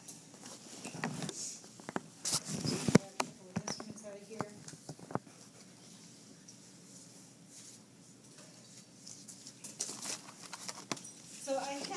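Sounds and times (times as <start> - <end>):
faint room hum: 0.0 - 11.9.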